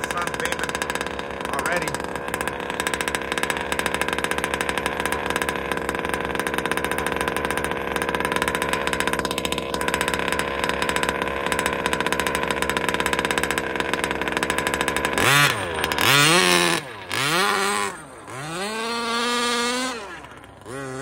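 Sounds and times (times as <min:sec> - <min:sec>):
rc buggy engine revving: 0:00.0 - 0:21.0.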